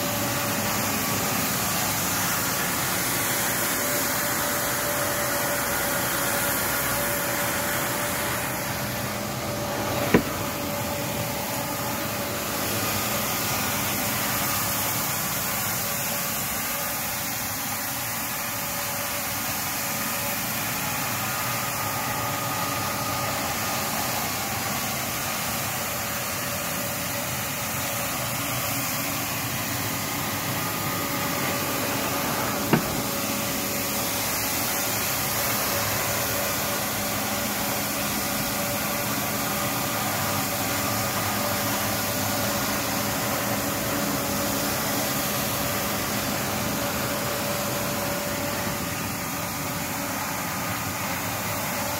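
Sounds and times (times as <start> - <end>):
floor scrubber motor hum and whine: 0.0 - 51.9.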